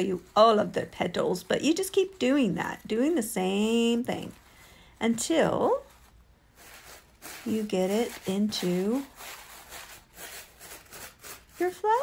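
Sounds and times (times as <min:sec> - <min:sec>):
paper rustling and crinkling: 0:05.8 - 0:12.0.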